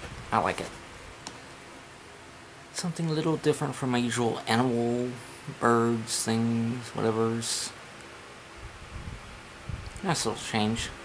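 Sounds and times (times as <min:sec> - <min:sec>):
faint hum: 0:00.0 - 0:11.0
steady hiss: 0:00.0 - 0:11.0.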